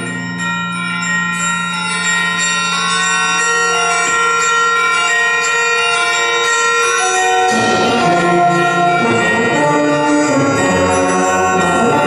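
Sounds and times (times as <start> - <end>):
bell-like metallic percussion: 0.0 - 12.0
wind band playing: 7.5 - 12.0.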